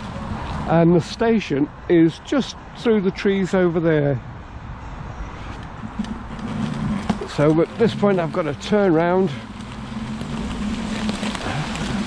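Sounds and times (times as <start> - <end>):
electric scooter motor humming: 5.4 - 12.0
tyres crackling over leaves: 5.4 - 12.0.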